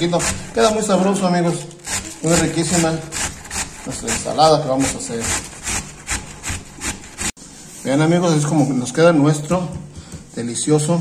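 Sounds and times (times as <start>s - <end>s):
cabbage rasping on metal grater: 0.0s - 7.4s.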